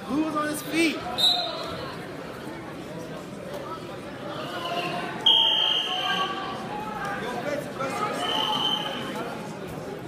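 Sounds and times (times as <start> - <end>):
crowd and coaches voices: 0.0 - 10.0.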